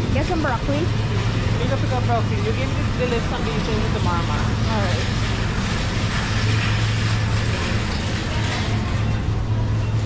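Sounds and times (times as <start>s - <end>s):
steady low hum: 0.0s - 10.0s
supermarket noise: 0.0s - 10.0s.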